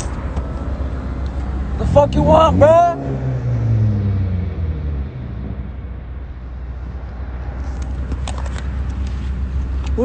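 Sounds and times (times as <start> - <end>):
car engine from inside cabin: 0.0 - 10.0
low road rumble: 0.0 - 10.0.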